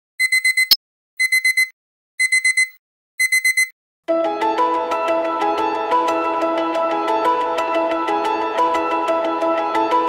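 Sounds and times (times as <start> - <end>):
alarm clock beeping: 0.2 - 3.7.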